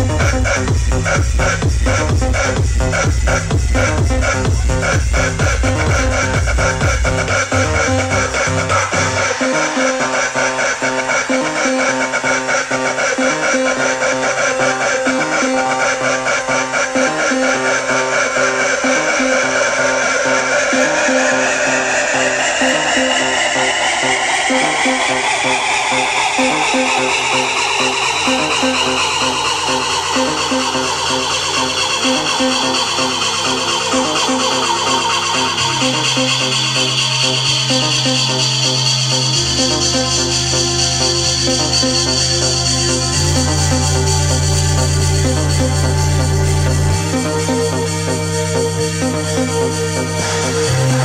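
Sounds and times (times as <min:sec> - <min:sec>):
electronic dance music: 0:00.0 - 0:51.0
rising synth sweep: 0:13.2 - 0:51.0.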